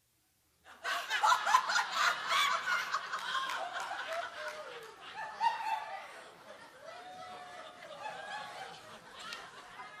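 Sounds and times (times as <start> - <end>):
people laughing: 0.7 - 10.0.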